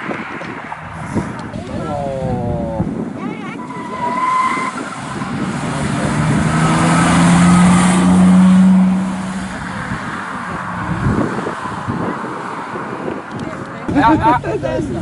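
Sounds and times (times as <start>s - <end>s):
rally car engine accelerating: 4.8s - 11.2s.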